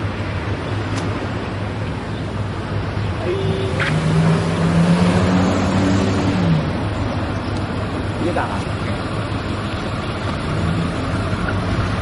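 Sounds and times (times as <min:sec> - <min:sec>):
traffic noise: 0:00.0 - 0:12.0
vehicle engine passing: 0:02.8 - 0:12.0.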